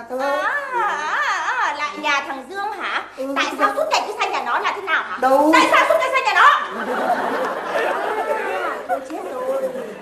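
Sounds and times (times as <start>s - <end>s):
voices chattering: 0.2s - 10.0s.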